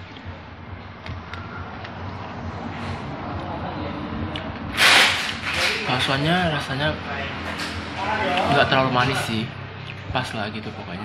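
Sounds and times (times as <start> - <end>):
steady background hum: 0.0 - 11.0
short loud rush of noise: 4.7 - 5.9.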